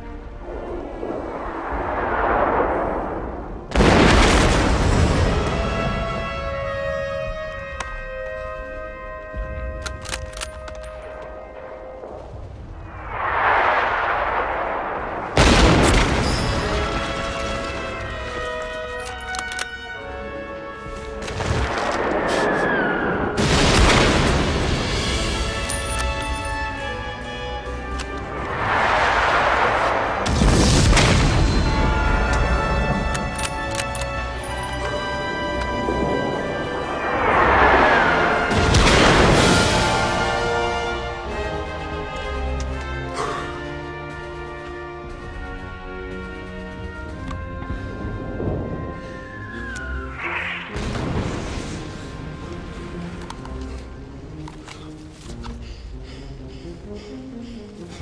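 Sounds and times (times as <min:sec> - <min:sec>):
orchestral film music: 0:00.0 - 0:58.0
loud booms: 0:00.5 - 0:06.5, 0:12.6 - 0:17.8, 0:21.4 - 0:25.6, 0:28.4 - 0:32.9, 0:35.3 - 0:41.2
loud crash: 0:12.8 - 0:17.3, 0:28.4 - 0:31.9, 0:35.9 - 0:40.7
rushing battle effect: 0:28.3 - 0:32.9, 0:35.8 - 0:41.2.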